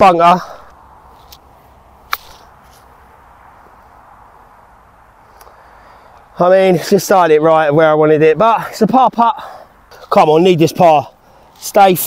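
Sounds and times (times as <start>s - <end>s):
faint outdoor background: 0.0s - 12.0s.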